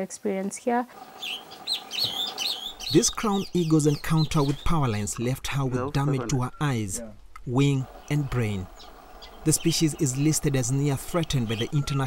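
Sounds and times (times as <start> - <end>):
birds chirping: 0.9 - 12.0
faint steady hum: 0.9 - 12.0.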